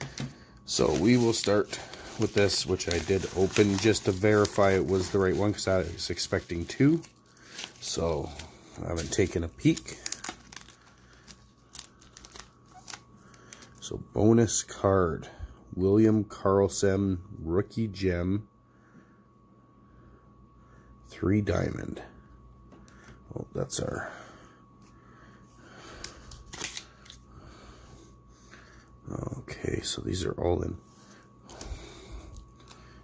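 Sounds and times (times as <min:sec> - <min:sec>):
cards rustling in hands: 0:00.0 - 0:13.8, 0:25.8 - 0:27.3.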